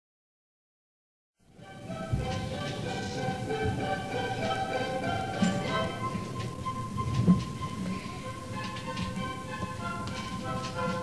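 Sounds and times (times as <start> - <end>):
tape hiss: 1.4 - 11.0.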